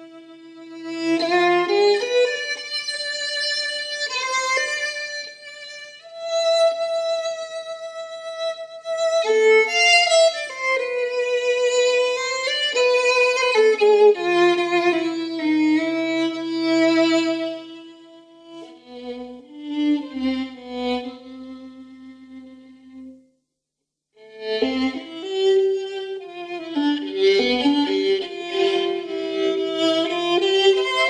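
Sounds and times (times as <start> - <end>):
slow violin melody: 0.0 - 23.2, 24.2 - 31.0.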